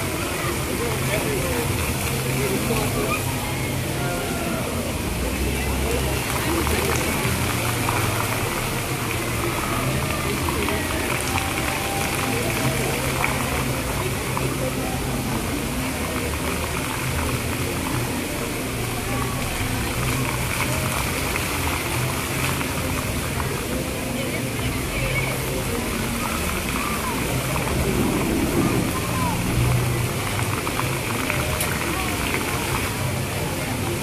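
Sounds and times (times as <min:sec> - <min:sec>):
fountain jets splashing: 0:00.0 - 0:34.0
voices: 0:00.0 - 0:34.0.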